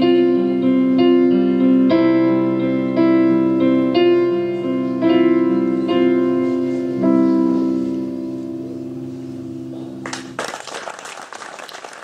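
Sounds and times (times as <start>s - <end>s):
piano chord: 0.0s - 10.4s
audience applause: 10.0s - 12.0s.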